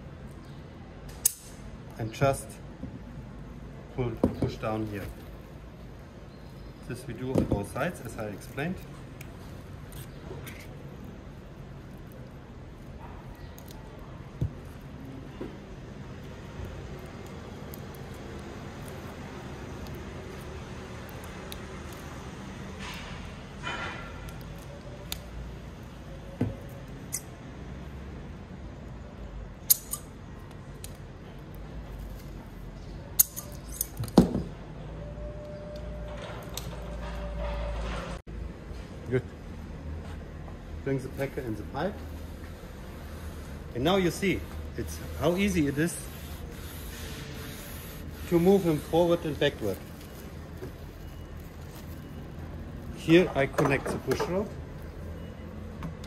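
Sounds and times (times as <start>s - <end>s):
plastic wrapping rustling: 4.5s - 15.3s, 43.9s - 55.1s.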